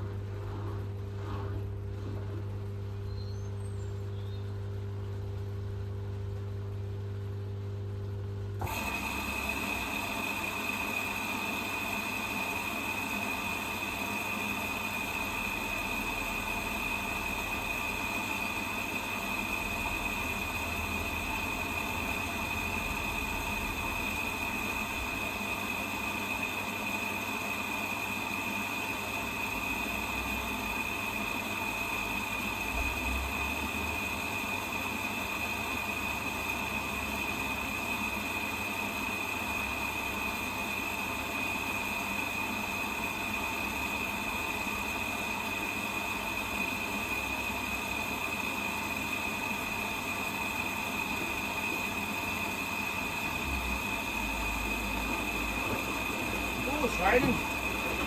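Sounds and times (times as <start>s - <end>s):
washing machine humming and whining: 0.0s - 58.0s.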